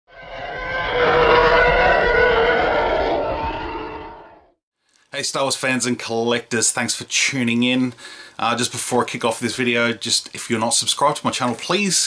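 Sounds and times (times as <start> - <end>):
steady electronic tones: 0.1 - 4.4
rough low rumble: 0.1 - 4.6.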